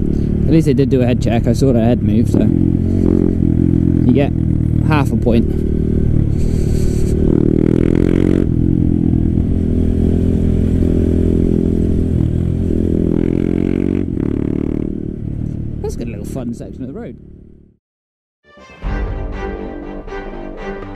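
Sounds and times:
motorcycle engine running: 0.0 - 17.8.

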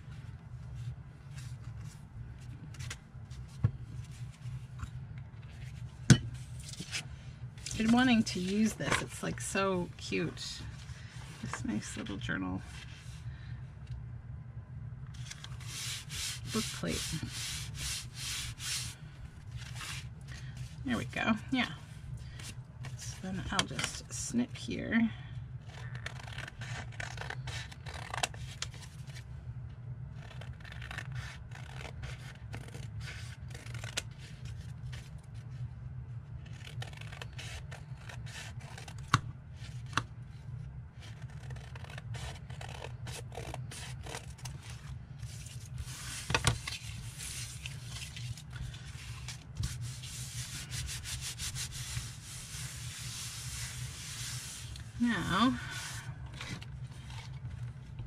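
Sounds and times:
steady low hum: 0.0 - 58.0
hands rubbing paper on table: 49.1 - 55.2.

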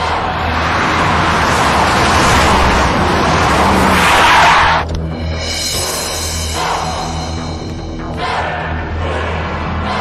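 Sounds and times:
car tyres screeching: 0.0 - 4.9.

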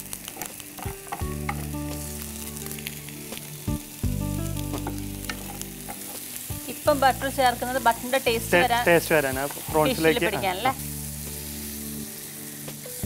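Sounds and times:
prawns sizzling in oil: 0.0 - 13.0.

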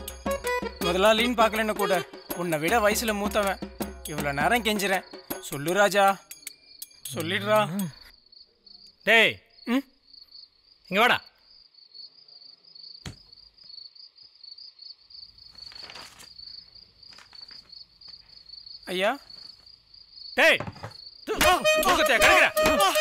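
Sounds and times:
crickets chirping: 1.4 - 21.4.

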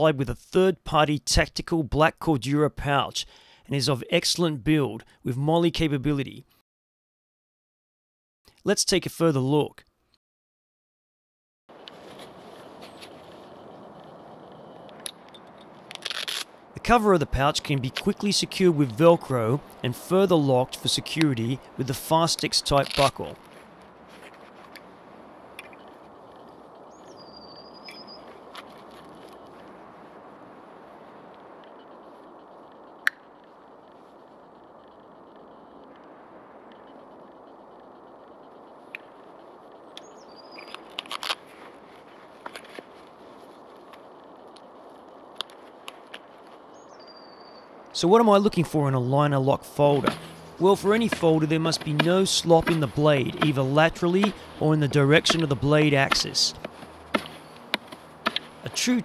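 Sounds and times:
steady background hiss: 11.8 - 59.0
clicks and rustles of handling: 22.7 - 24.9, 40.6 - 43.1
bird chirps: 25.6 - 28.4, 40.0 - 40.9, 46.7 - 47.8.

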